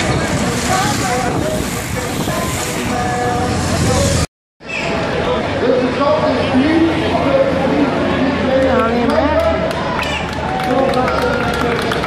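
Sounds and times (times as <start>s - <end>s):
crowd noise: 0.0s - 12.0s
racing cyclists passing: 0.0s - 12.0s.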